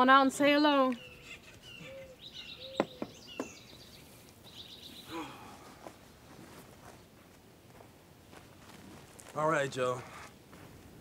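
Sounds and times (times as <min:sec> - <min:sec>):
small birds chirping: 0:00.4 - 0:07.2.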